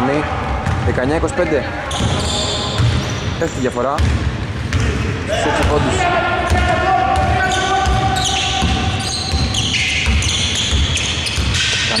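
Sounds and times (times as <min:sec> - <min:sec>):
players' voices: 0:00.0 - 0:10.9
sneakers squeaking: 0:00.0 - 0:12.0
basketball bouncing: 0:00.4 - 0:03.2, 0:03.9 - 0:05.0, 0:06.5 - 0:12.0.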